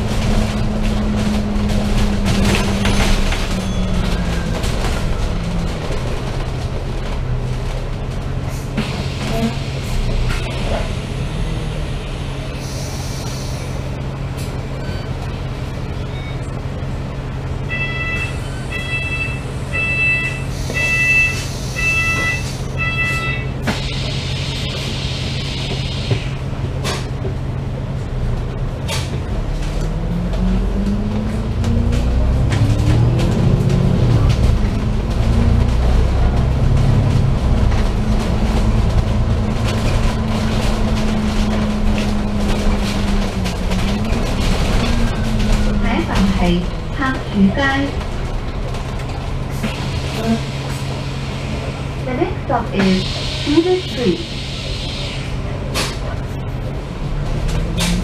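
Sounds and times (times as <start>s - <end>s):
bus engine idling and revving: 0.0s - 58.0s.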